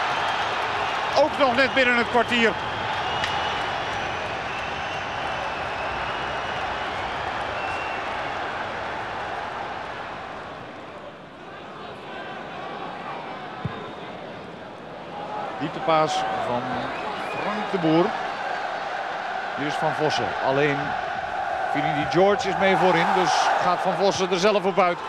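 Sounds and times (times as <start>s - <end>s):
stadium crowd cheering: 0.0s - 25.0s.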